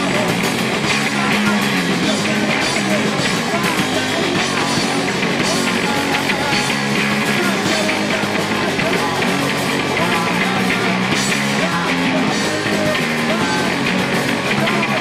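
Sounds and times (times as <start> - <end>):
distorted electric guitars: 0.0 - 15.0
drums: 0.0 - 15.0
heavy bass guitar: 0.0 - 15.0
shouted vocals: 0.0 - 15.0.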